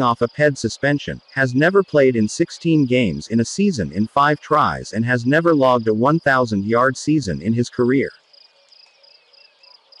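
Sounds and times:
person speaking: 0.0 - 8.2
low hiss: 0.0 - 9.6.

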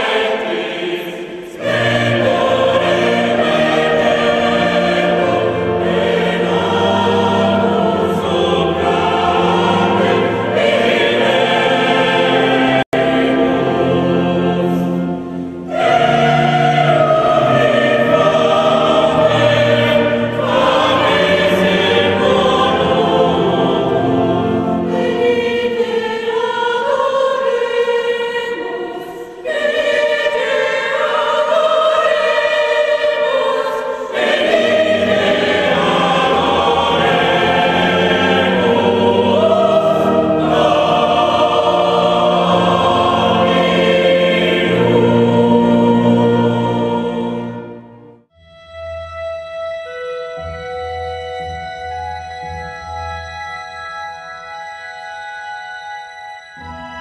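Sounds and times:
choir singing: 0.0 - 48.3.

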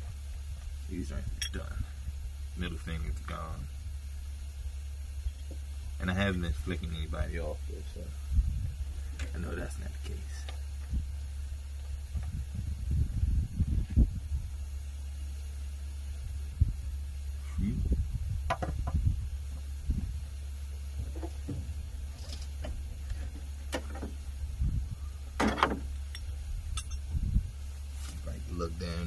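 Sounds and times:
steady low hum: 0.0 - 29.0
wrench clinking on metal: 26.1 - 27.1.

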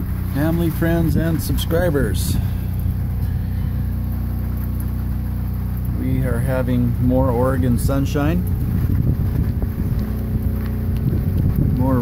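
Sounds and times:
diesel generator droning: 0.0 - 12.0.

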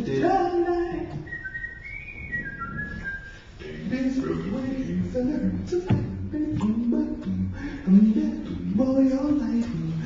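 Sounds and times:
whistled melody: 1.0 - 4.9.

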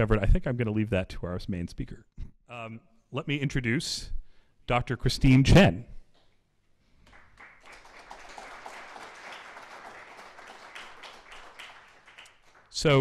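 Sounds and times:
faint audience applause: 7.0 - 13.0.

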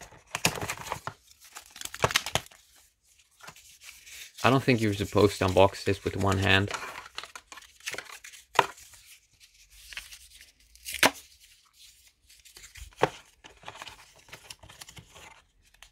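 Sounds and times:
cardboard insert rustling and scraping: 0.0 - 15.9.

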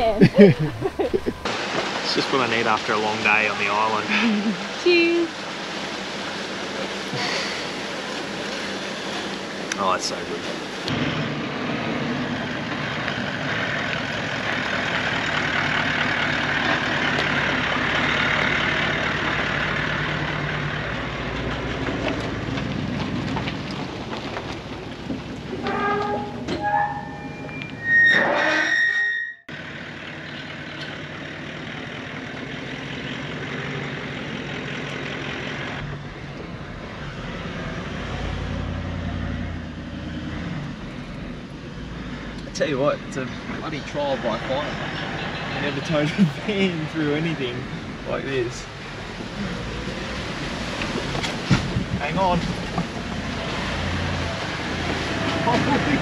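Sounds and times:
car engine and road noise: 0.0 - 56.0
metal gate squeaking: 25.6 - 29.5.

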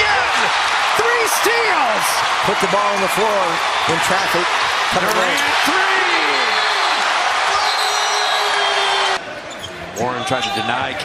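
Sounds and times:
crowd cheering loudly: 0.0 - 10.8
arena noise: 0.0 - 11.0.

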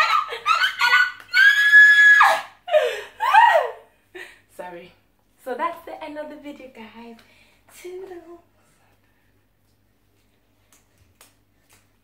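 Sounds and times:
person squealing and laughing: 0.0 - 3.8.

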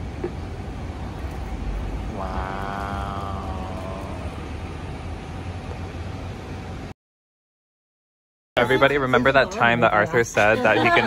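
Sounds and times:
broth boiling and bubbling: 0.0 - 6.9
person holding a drawn-out tone: 2.0 - 4.8.

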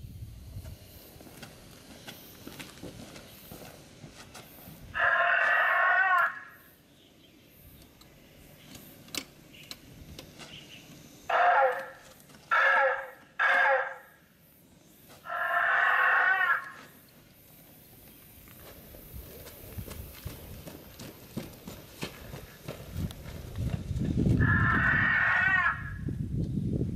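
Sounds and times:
dinosaur roar: 5.0 - 6.6, 15.2 - 16.9, 24.4 - 26.1.

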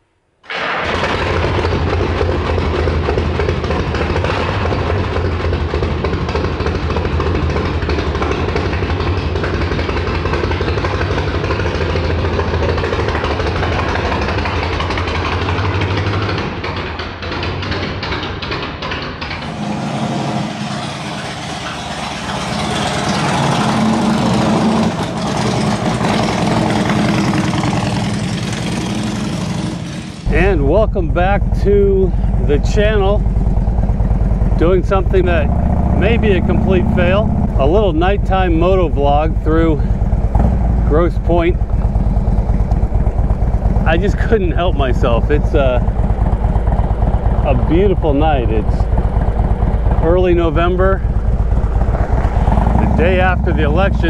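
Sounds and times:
motorcycle engine idling and pulling away: 0.7 - 54.0.

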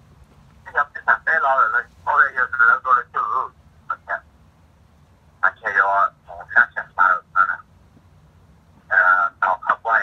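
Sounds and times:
man talking over telephone: 0.7 - 4.3, 5.4 - 7.7, 8.9 - 10.0.

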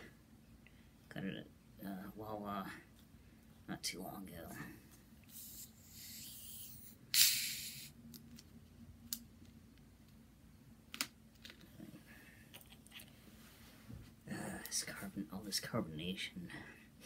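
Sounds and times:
carbonation hissing: 5.3 - 7.9.

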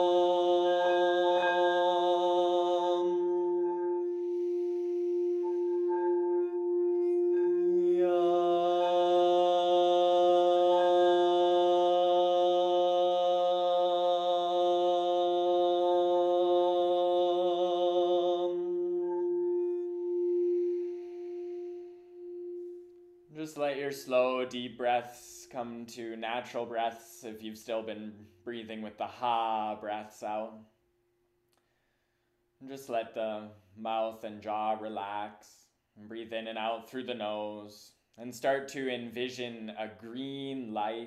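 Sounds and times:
ringing drone tone: 0.0 - 12.5, 15.7 - 23.3.

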